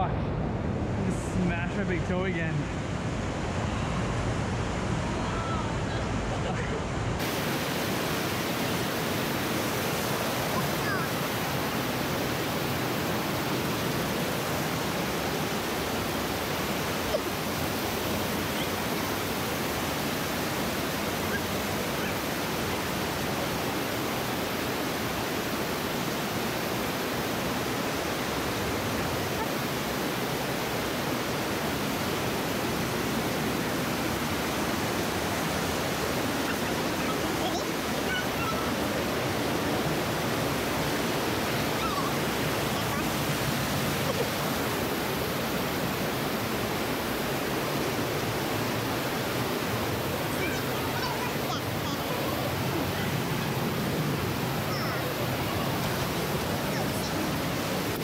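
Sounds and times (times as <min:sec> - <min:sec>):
river water rushing over rocks: 0:00.0 - 0:58.0.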